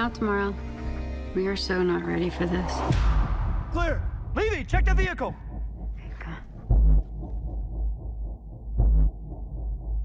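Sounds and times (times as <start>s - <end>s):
dull low rumble: 0.0s - 10.0s
deep heartbeat-like thump: 2.9s - 10.0s.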